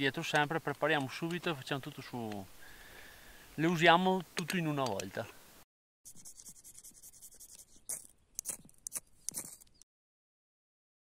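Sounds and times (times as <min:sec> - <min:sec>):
metal tool scraping bark: 0:06.3 - 0:09.8.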